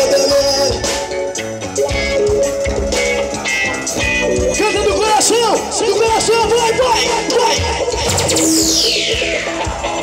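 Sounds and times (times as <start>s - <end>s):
drums and percussion: 0.0s - 10.0s
keyboard: 0.0s - 10.0s.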